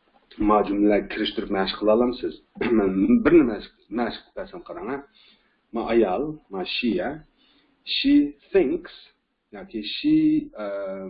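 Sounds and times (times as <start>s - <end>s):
man speaking: 0.3s - 11.0s
man clearing throat: 2.6s - 3.3s.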